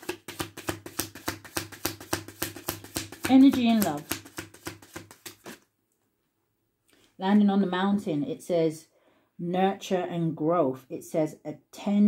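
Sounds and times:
cards being shuffled: 0:00.0 - 0:05.7.

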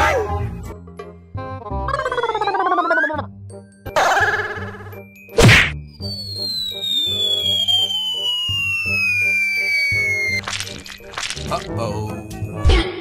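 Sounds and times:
background music: 0:00.0 - 0:13.0
loud cartoon whack: 0:05.4 - 0:05.8
descending slide whistle: 0:06.0 - 0:10.4.

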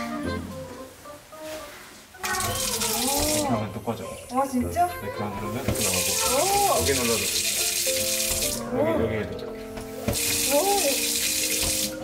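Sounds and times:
faucet water running into sink: 0:02.2 - 0:03.6, 0:05.6 - 0:08.7, 0:10.1 - 0:12.0.

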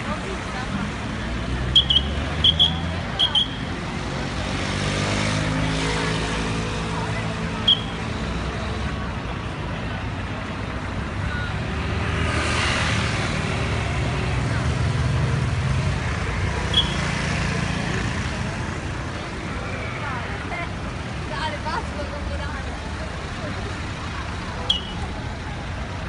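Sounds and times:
buses and cars idling and passing: 0:00.0 - 0:26.0
vehicle passing: 0:00.1 - 0:09.1.

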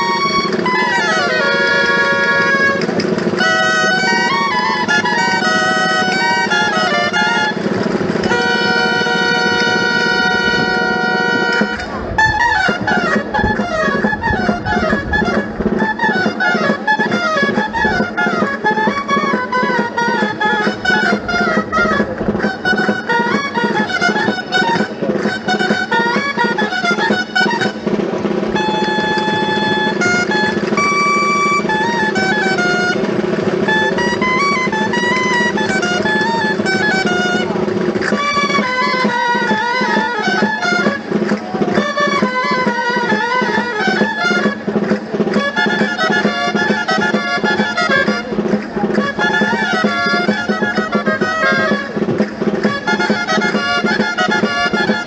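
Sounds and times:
drum beat: 0:00.0 - 0:55.0
reedy pipes playing: 0:00.0 - 0:55.0.

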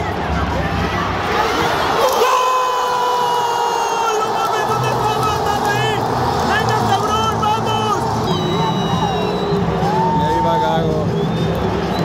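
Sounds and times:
stadium crowd cheering: 0:00.1 - 0:12.0.

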